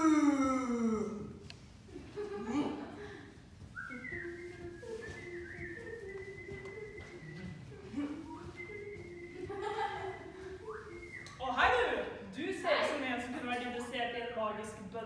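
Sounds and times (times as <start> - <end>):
person humming: 0.0 - 1.4, 3.9 - 11.2
person whistling: 3.7 - 11.7.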